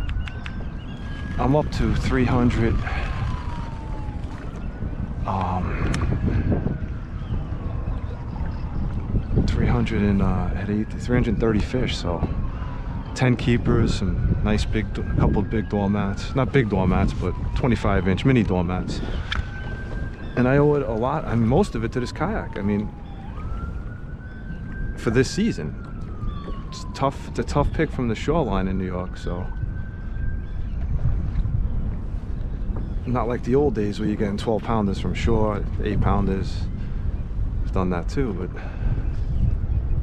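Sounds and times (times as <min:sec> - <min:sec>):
siren wailing: 0:00.0 - 0:40.0
wind buffeting microphone: 0:00.0 - 0:40.0.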